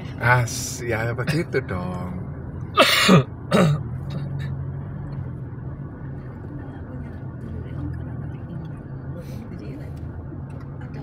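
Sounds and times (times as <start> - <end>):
car engine and cabin drone: 0.0 - 11.0
person clearing throat: 2.8 - 3.9.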